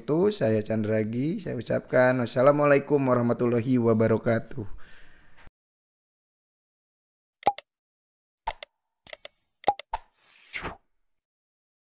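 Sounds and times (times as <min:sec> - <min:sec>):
mouse-click sounds: 0:07.4 - 0:07.6, 0:08.5 - 0:10.0.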